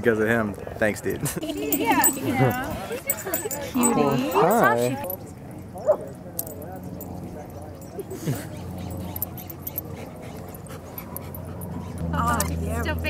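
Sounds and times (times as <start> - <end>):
faint background voices: 1.5 - 13.0
dog whining: 7.8 - 12.6.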